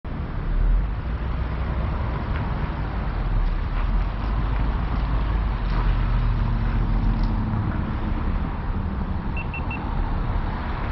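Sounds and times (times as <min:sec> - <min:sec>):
road noise: 0:00.0 - 0:10.9
vehicle engine rumble: 0:00.1 - 0:10.9.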